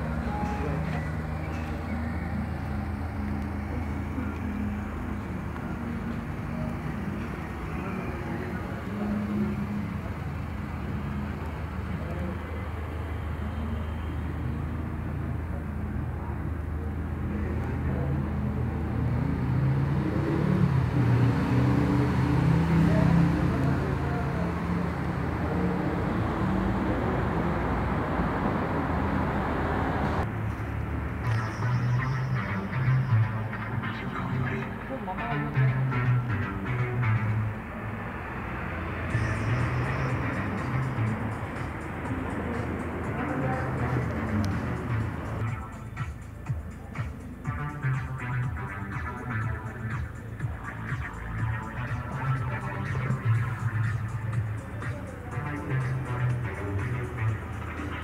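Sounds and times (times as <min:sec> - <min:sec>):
car engine idling: 0:00.0 - 0:18.9, 0:32.8 - 0:58.0
faint voices: 0:00.0 - 0:29.5, 0:32.4 - 0:58.0
urban background noise: 0:00.0 - 0:58.0.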